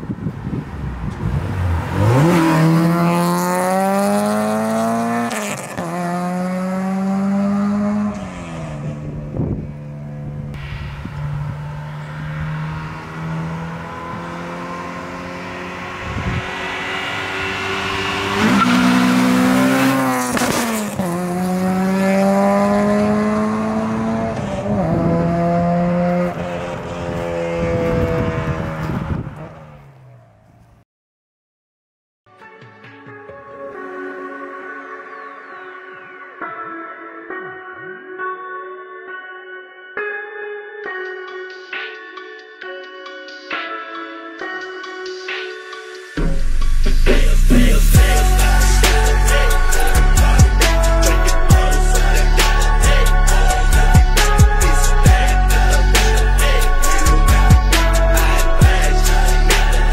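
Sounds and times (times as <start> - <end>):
car engine revving through gears: 1.0 - 30.4.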